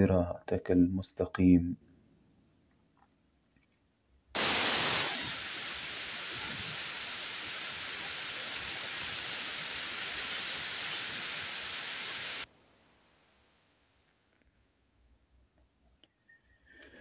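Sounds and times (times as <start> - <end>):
loud static hiss: 4.4 - 14.0.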